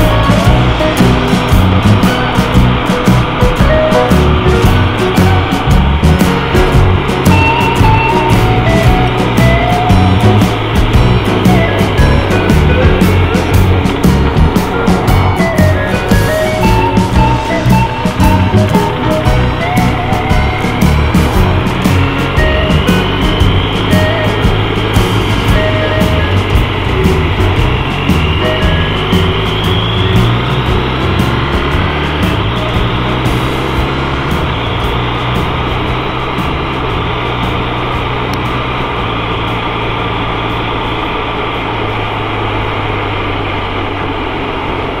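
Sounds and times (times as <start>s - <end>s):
rock music with guitar: 0.0s - 44.8s.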